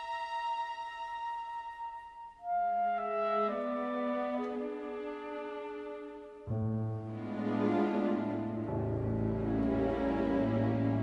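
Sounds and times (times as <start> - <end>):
orchestral film music: 0.0 - 11.0.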